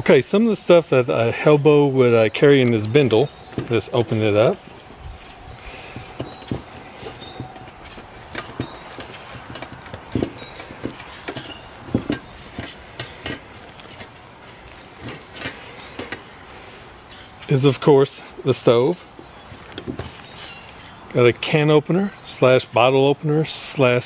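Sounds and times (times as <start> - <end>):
cloth rustling: 2.7 - 17.5.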